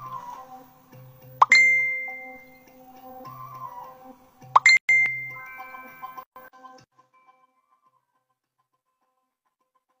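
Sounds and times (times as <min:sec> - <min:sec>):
bell-like ding: 0:01.4 - 0:02.6, 0:04.6 - 0:06.2
soft background tones: 0:01.4 - 0:03.9.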